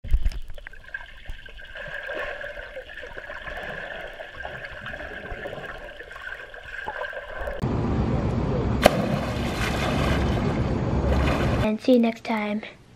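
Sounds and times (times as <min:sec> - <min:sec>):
faint constant hum: 0:07.6 - 0:12.9.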